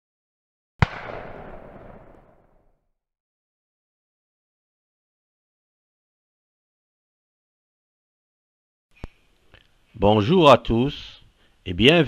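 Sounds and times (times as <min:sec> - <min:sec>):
explosion blast: 0:00.8 - 0:02.6.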